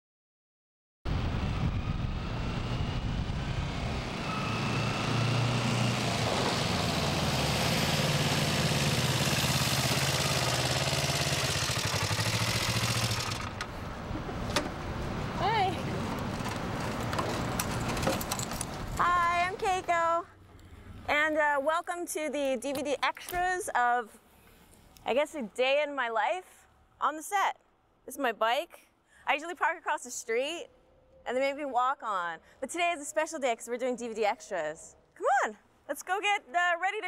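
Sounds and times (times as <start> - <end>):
motorcycle engine running: 5.2 - 14.3
clicks and knocks: 16.1 - 19.0.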